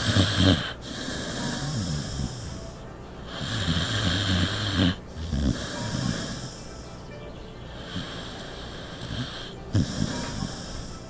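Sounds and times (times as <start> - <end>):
dog snoring: 0.0 - 6.8, 7.8 - 11.0.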